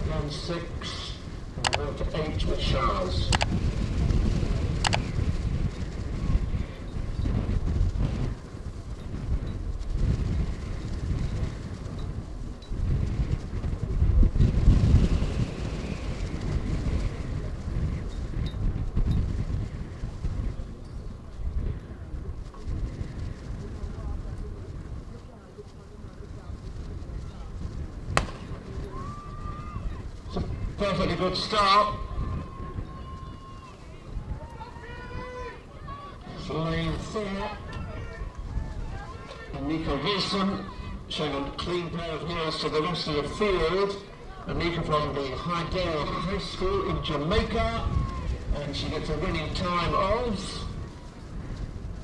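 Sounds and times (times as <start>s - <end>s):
wind buffeting microphone: 0.0s - 52.0s
starter's pistol crack: 28.2s - 28.6s.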